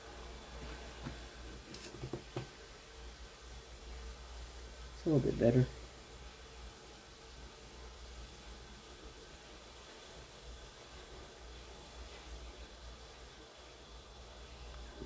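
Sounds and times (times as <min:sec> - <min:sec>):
faint room tone hiss: 0:00.0 - 0:15.0.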